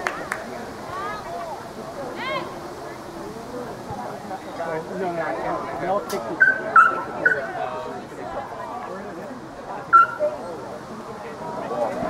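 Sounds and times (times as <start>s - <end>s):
spectators talking: 0.0s - 12.0s.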